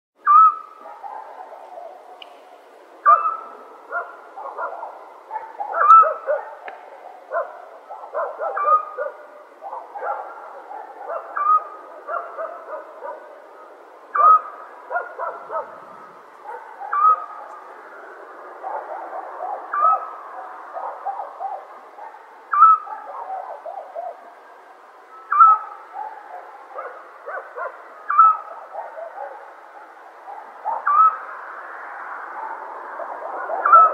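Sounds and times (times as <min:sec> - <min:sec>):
clear animal call: 0:00.2 - 0:00.7, 0:11.2 - 0:11.8, 0:22.5 - 0:22.9, 0:25.3 - 0:25.8, 0:28.1 - 0:28.5, 0:30.8 - 0:31.2
chorus of overlapping animal calls: 0:00.2 - 0:02.4, 0:03.0 - 0:33.9.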